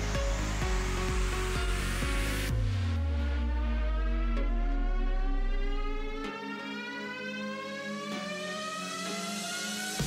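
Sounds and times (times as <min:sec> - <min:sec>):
electronic music: 0:00.0 - 0:10.0
rising synth riser sweep: 0:00.0 - 0:10.0.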